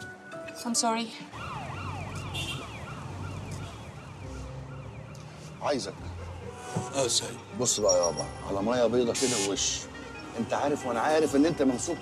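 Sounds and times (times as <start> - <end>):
police siren yelping: 1.3 - 6.1.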